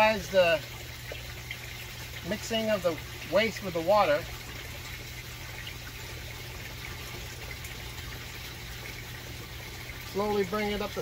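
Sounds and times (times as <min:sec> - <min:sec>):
low steady hum: 0:00.0 - 0:11.0
water trickling and rushing: 0:00.0 - 0:11.0.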